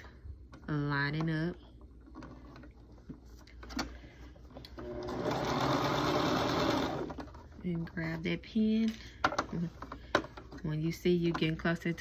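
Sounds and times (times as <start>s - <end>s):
sewing machine sewing: 4.8s - 7.4s.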